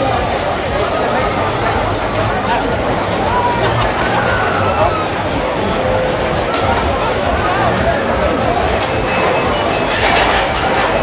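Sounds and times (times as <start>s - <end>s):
crowd noise: 0.0s - 11.0s
funfair music: 0.0s - 11.0s
thrill ride machinery rumbling: 0.0s - 11.0s.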